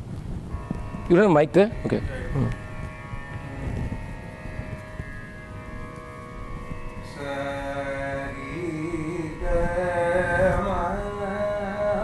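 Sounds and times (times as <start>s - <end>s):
faint drone of held tones: 0.0s - 12.0s
man singing: 7.1s - 12.0s.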